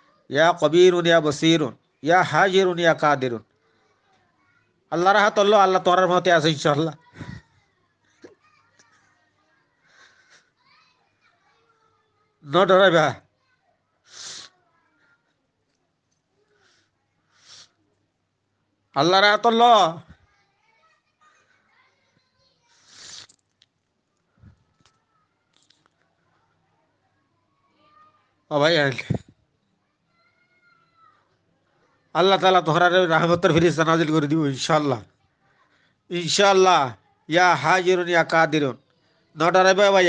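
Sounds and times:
faint distant voices: 0.0s - 40.0s.

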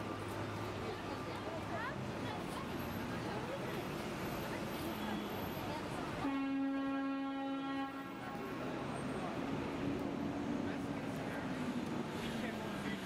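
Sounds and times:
street traffic: 0.0s - 13.0s
vehicle horn blast: 6.2s - 8.2s.

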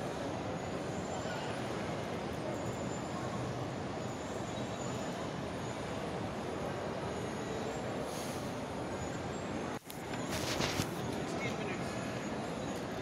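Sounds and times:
shopping mall hum and hubbub: 0.0s - 13.0s.

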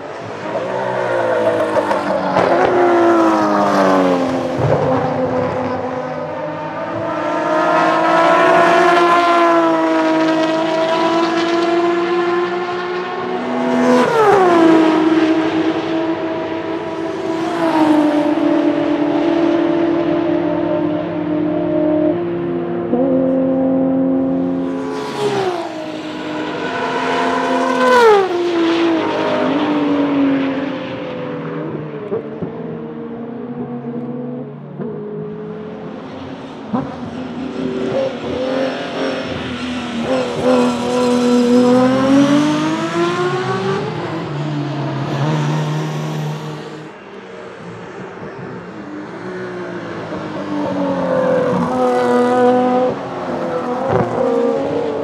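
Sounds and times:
race car engines passing: 0.0s - 55.0s.

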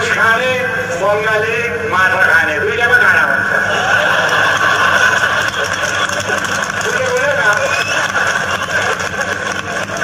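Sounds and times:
droning hum and hiss: 0.0s - 10.0s.

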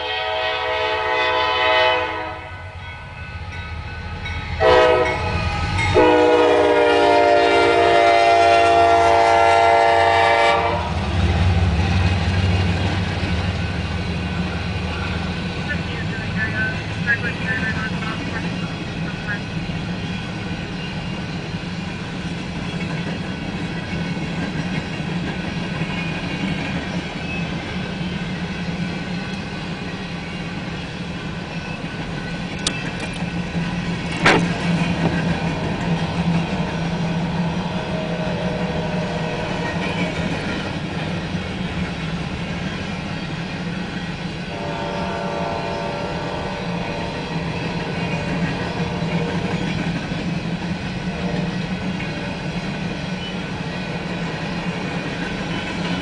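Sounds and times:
freight train wheels rumbling: 0.0s - 56.0s.

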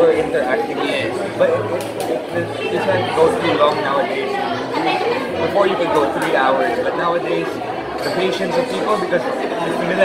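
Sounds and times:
man talking: 0.0s - 4.6s, 5.4s - 10.0s
murmur of chatter: 0.0s - 10.0s.

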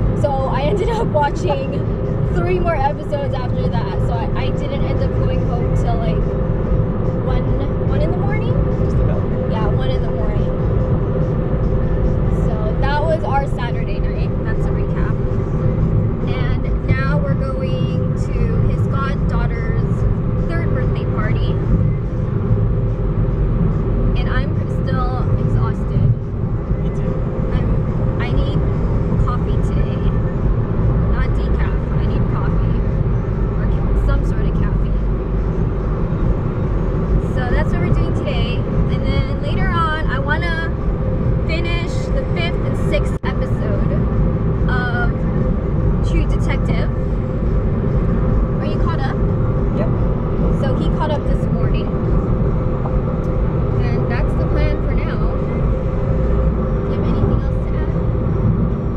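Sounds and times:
car road and engine noise: 0.0s - 58.9s
person talking: 0.2s - 1.8s.

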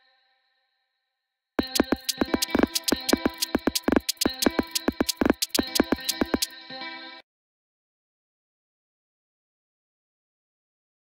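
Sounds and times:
fast sharp percussive hits: 1.6s - 6.5s.

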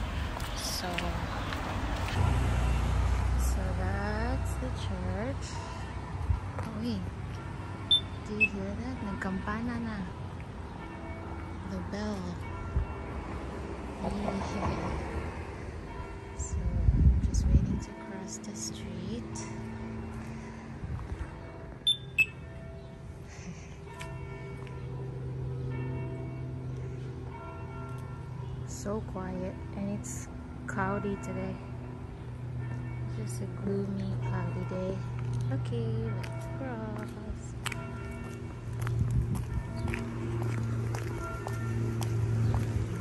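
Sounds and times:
faint street noise: 0.0s - 43.0s
church bells ringing: 3.4s - 43.0s
high beeps: 7.9s - 8.5s, 21.9s - 22.4s.

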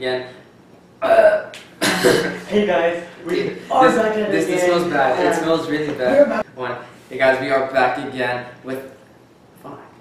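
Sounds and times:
man burping: 1.0s - 2.4s
man talking or laughing: 5.8s - 6.5s.

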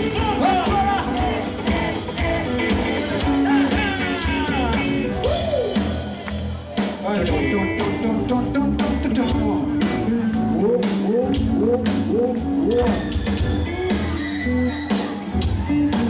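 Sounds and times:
man's voice on microphone: 0.0s - 1.2s, 3.4s - 5.3s, 6.9s - 13.1s
live rock band: 0.0s - 16.0s.

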